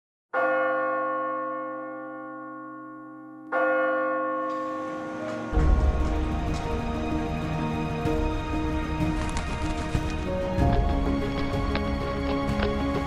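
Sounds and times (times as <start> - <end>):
large bell ringing: 0.4 - 7.8.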